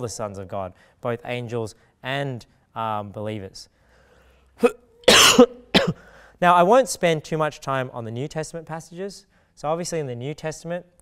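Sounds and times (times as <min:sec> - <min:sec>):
man coughing: 0:04.6 - 0:06.2.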